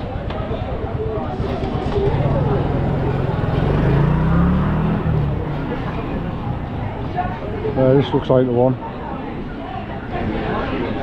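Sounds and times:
vehicle engine running: 0.8 - 7.8.

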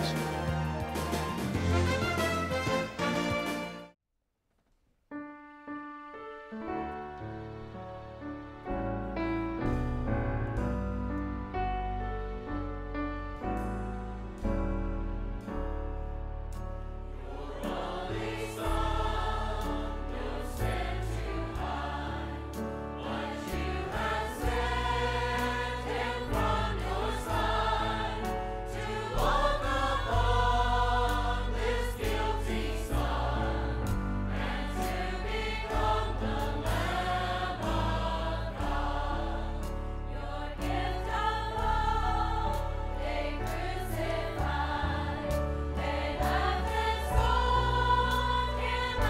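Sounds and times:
instrumental accompaniment: 0.0 - 4.0
choir singing gospel song: 17.0 - 49.0.

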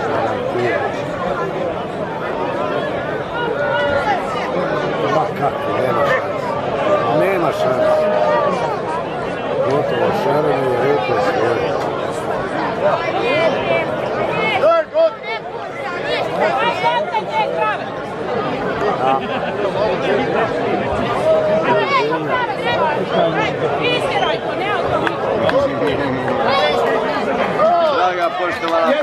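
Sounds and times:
crowd chatter: 0.0 - 29.0.

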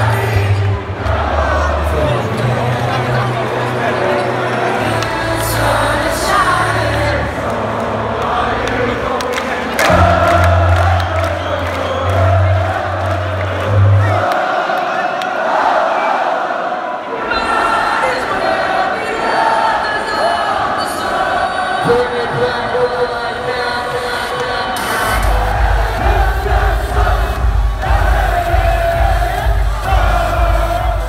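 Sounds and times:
crowd cheering and singing along: 0.0 - 31.0
electronic dance music: 21.3 - 31.0
heavy bass line: 24.8 - 31.0.

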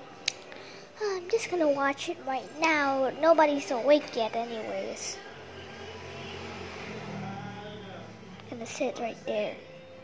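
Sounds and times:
television low hum: 0.0 - 10.0
distant indistinct voices: 3.2 - 10.0.

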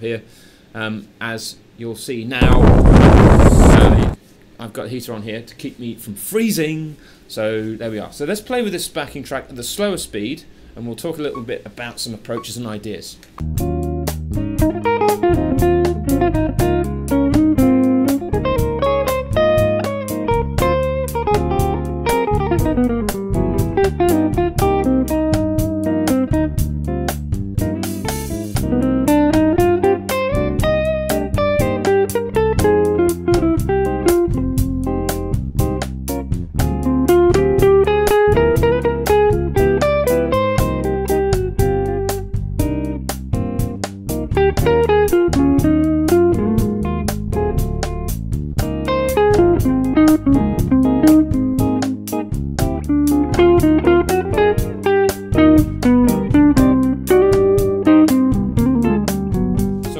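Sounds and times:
electric guitar solo: 2.6 - 4.2, 14.5 - 26.6, 27.7 - 35.0, 36.8 - 42.1, 44.4 - 47.6, 48.8 - 59.9
bossa nova backing track: 13.4 - 59.9.

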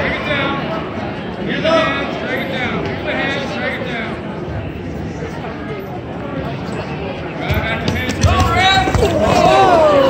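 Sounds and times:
spectators yelling: 8.5 - 10.0.

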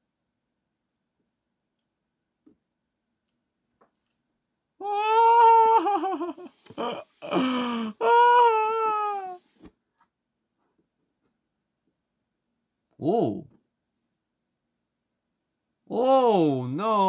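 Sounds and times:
man's falsetto laughter: 4.8 - 9.4.

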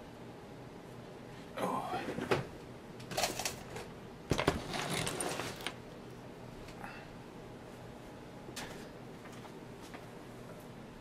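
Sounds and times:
rustling and scraping: 4.3 - 5.8.

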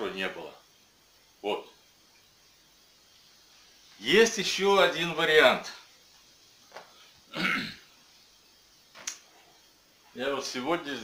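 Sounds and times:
man clearing his throat: 7.3 - 7.9.

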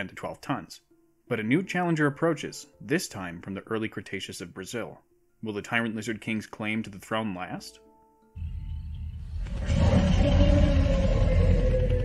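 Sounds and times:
deep rumble: 8.4 - 12.0
long falling tone: 8.4 - 12.0.

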